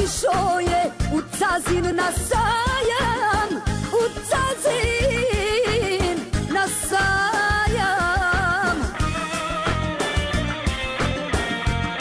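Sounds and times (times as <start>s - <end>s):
band playing steady beat: 5.0s - 12.0s.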